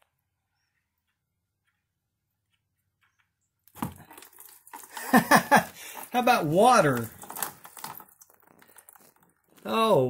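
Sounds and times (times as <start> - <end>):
fluid spattering into drain pan: 3.7 - 9.2.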